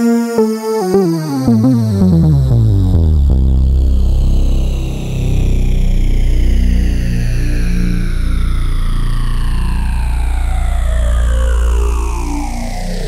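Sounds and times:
sweeping synth modulation: 0.0s - 4.7s
synthesizer deep bass notes: 0.0s - 13.0s.

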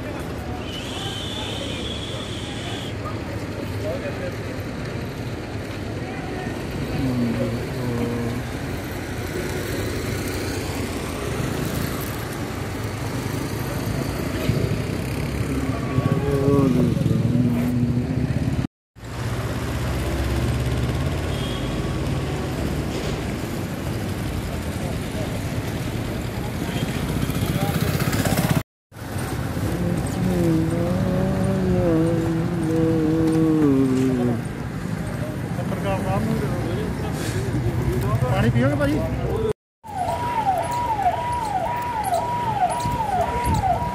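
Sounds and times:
rumble of vehicles: 0.0s - 43.9s
indistinct voices: 29.7s - 34.7s.

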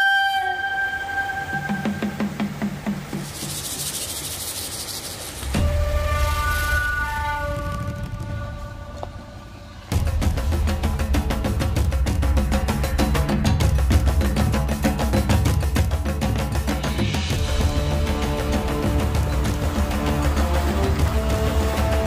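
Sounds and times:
flute melody: 0.0s - 2.5s, 5.6s - 9.7s
hiss: 1.4s - 7.6s.

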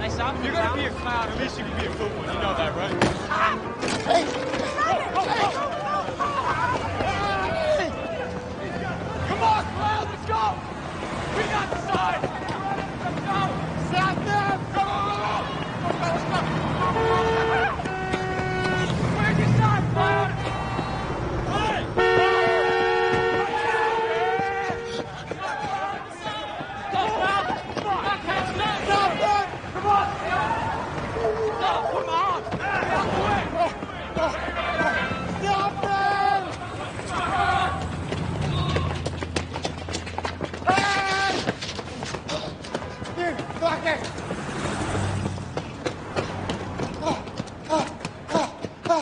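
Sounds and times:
running footsteps on pavement: 0.0s - 49.0s
traffic rumble: 0.0s - 49.0s
car horns honking: 13.9s - 26.6s, 31.1s - 37.8s.

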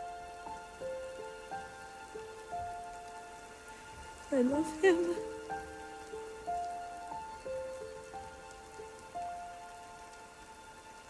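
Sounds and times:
rain falling: 0.0s - 11.0s.

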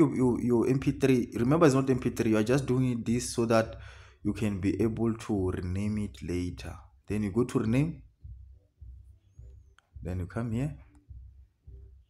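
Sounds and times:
faint low thumps: 0.8s - 12.0s.

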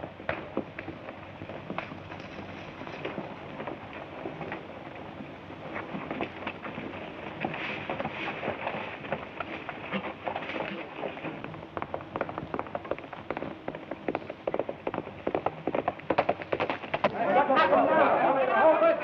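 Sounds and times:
hoof clops on dirt road: 0.0s - 17.3s
crowd of voices: 17.0s - 19.0s.

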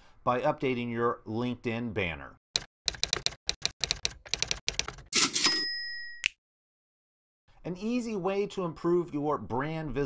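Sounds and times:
typewriter keystroke clicks: 2.6s - 5.2s
typewriter bell ding: 5.2s - 6.3s.

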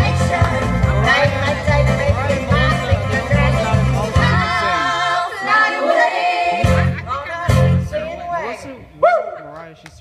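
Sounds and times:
pulsing bass line: 0.0s - 5.1s, 6.6s - 8.2s
karaoke backing track: 0.0s - 8.9s.

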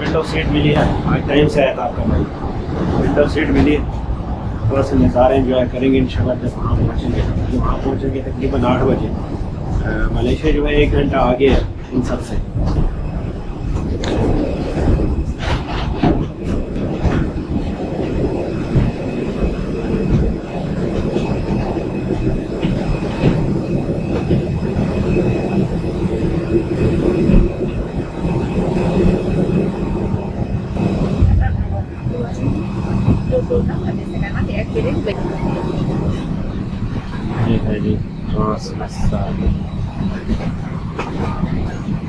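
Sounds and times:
mechanical rumble and hum: 0.0s - 42.0s
rolling luggage: 0.0s - 42.0s.

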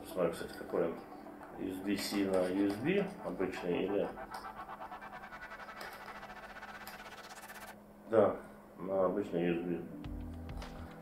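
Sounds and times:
cable rubbing on cardboard: 2.3s - 7.8s.

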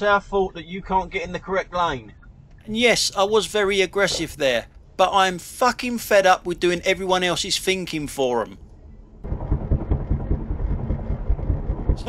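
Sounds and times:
low wind buffeting: 0.5s - 12.0s.

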